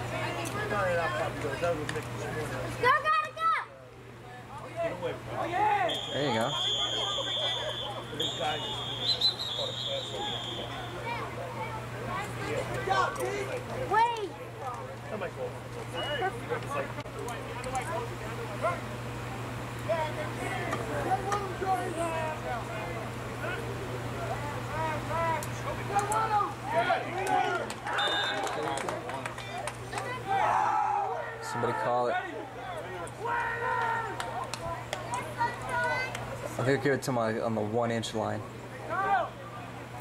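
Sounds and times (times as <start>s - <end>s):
people talking and calling: 0.0s - 40.0s
people shouting: 5.4s - 11.0s, 30.1s - 34.4s.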